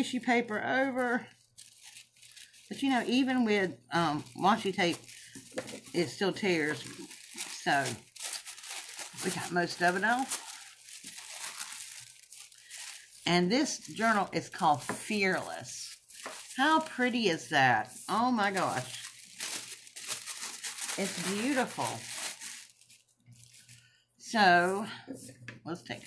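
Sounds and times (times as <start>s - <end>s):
tissue paper crinkling: 0.0s - 24.0s
tissue paper tearing: 0.8s - 23.8s.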